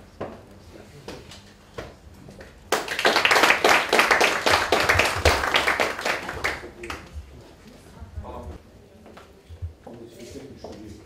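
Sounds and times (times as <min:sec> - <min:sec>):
audience applauding: 0:02.7 - 0:07.1.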